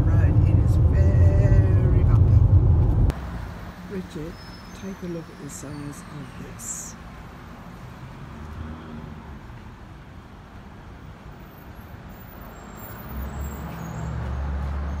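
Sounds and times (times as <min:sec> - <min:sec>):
traffic noise: 0:00.0 - 0:15.0
vehicle engine rumbling: 0:00.0 - 0:15.0.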